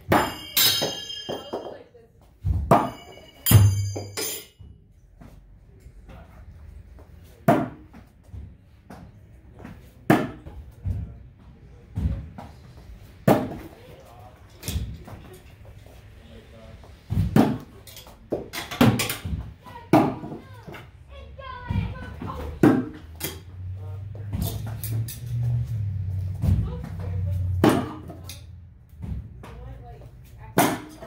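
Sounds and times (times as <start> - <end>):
metal blades hitting wooden board: 0.0 - 1.7, 2.7 - 4.6
metallic clang and ring: 0.0 - 4.8.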